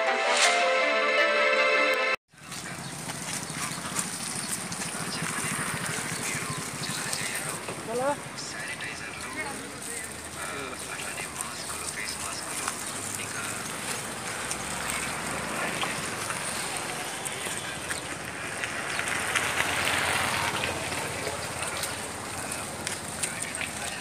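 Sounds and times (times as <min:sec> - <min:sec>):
background voices talking: 0:02.3 - 0:24.0
steady traffic noise: 0:02.3 - 0:24.0.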